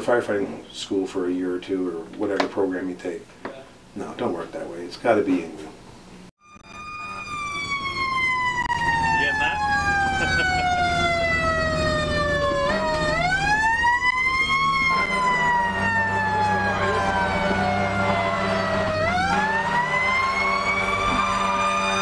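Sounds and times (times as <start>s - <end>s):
fire engine siren wailing: 6.4s - 22.0s
low engine drone: 6.6s - 22.0s.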